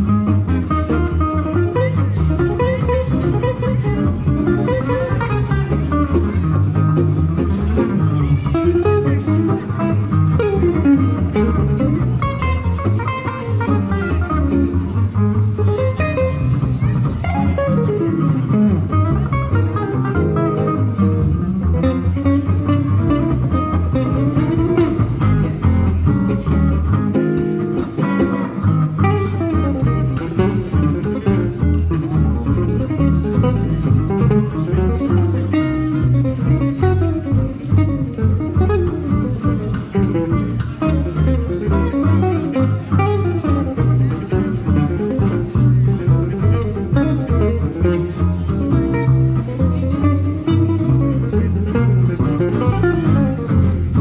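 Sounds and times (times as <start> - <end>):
acoustic guitars playing gypsy jazz: 0.0 - 54.0
double bass notes: 0.0 - 54.0.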